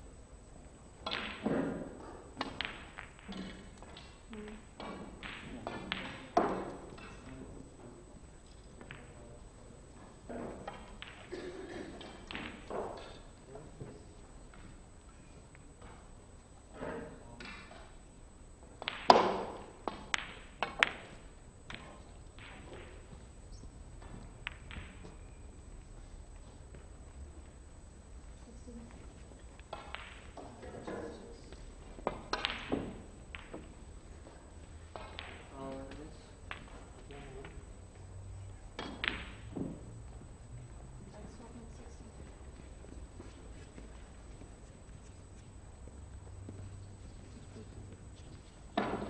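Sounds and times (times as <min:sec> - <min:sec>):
low room hum: 0:00.0 - 0:49.0
snooker balls clicking: 0:00.9 - 0:13.4, 0:18.7 - 0:27.6, 0:28.9 - 0:38.1, 0:38.7 - 0:40.8.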